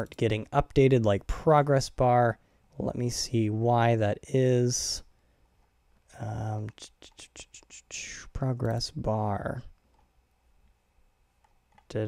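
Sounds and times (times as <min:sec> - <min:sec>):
man murmuring: 0:06.2 - 0:09.6.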